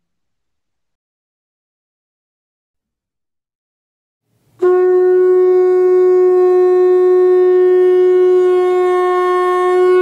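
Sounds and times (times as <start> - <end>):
long horn note: 4.6 - 10.0.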